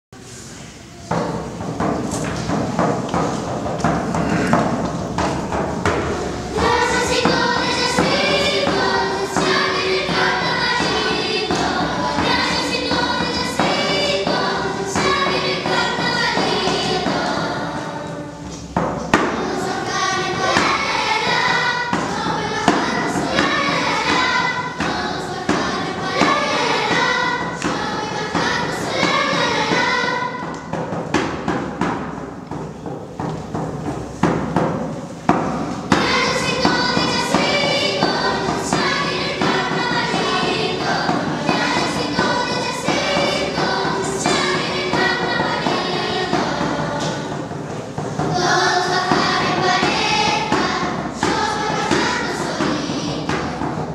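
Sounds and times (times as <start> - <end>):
children's choir singing folk song: 0.2 - 53.9
hand drum beat: 1.1 - 53.9.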